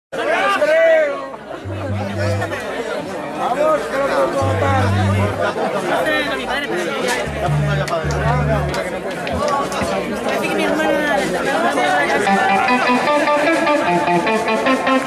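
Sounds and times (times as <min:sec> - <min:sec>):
people chattering: 0:00.1 - 0:15.0
electric bass low notes: 0:01.6 - 0:02.6, 0:04.4 - 0:05.6, 0:07.2 - 0:10.0.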